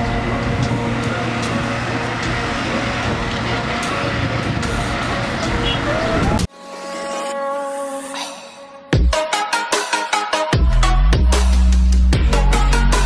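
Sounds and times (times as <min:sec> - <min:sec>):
busy street traffic: 0:00.0 - 0:06.5.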